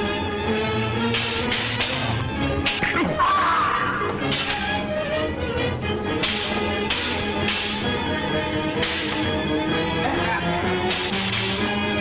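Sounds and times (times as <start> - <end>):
film music: 0.0 - 12.0
sharp cracking hits: 1.0 - 3.0, 4.2 - 4.8, 6.2 - 8.0, 8.7 - 9.4, 10.8 - 11.7.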